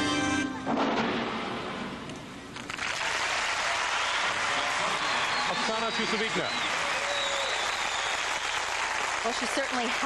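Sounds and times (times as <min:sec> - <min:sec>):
arena crowd applauding: 0:02.5 - 0:10.0.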